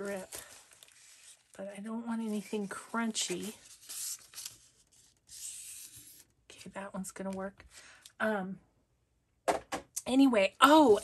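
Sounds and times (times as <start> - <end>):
paper rustling: 0.0 - 6.2.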